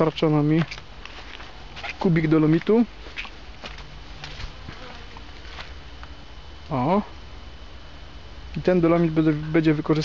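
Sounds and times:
footsteps on dirt path: 0.0 - 5.9
low steady rumble: 0.0 - 10.0.

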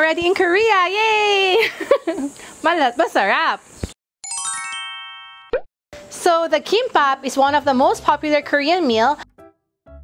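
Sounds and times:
descending bell-like chimes: 4.2 - 5.5.

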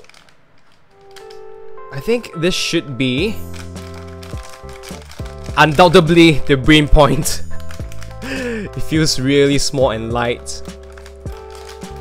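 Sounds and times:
soft background music: 0.1 - 12.0
foil pouch crinkling: 3.5 - 6.1.

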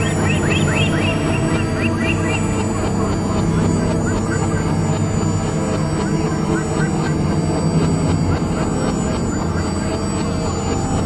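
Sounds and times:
experimental noise music: 0.0 - 11.0
low drone: 0.0 - 11.0.

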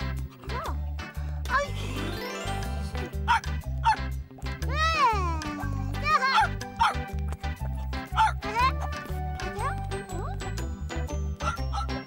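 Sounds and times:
children's music with bass line: 0.0 - 12.0
cartoon dog barking and yipping: 3.2 - 4.1, 4.7 - 10.5, 11.4 - 12.0.

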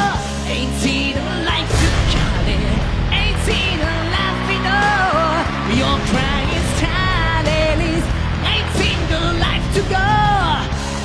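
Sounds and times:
bass guitar: 0.0 - 11.0
male singer singing: 0.0 - 11.0
rock band playing: 0.0 - 11.0
loud drum hits: 1.7 - 4.4.

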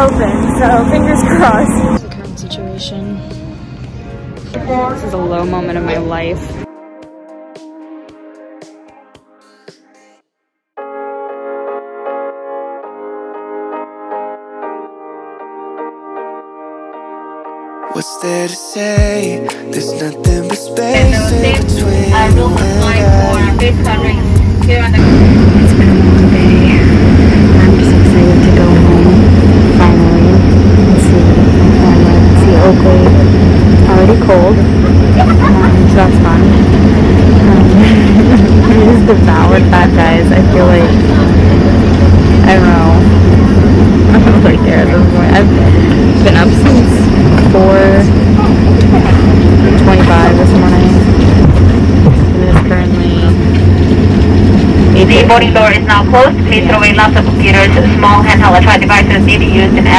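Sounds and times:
airliner cabin hum: 0.0 - 6.7, 18.2 - 59.9
indistinct voices talking: 0.0 - 6.7, 17.9 - 59.9.

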